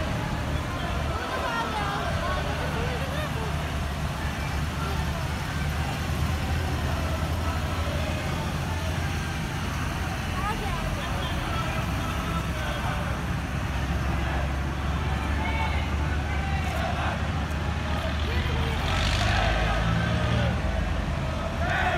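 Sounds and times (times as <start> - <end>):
low rumble of road vehicles: 0.0 - 21.9
people talking in background: 0.0 - 21.9.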